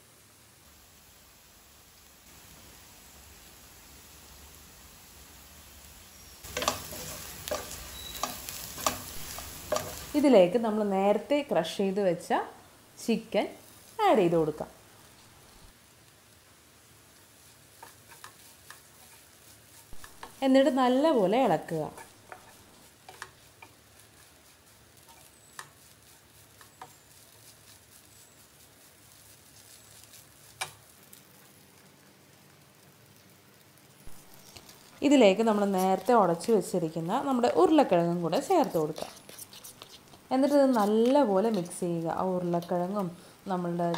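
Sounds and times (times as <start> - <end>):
low frying sizzle: 0.0 - 43.9
wooden spatula scraping pan: 6.5 - 10.2, 17.5 - 28.4, 35.3 - 43.2
person speaking: 35.0 - 43.9.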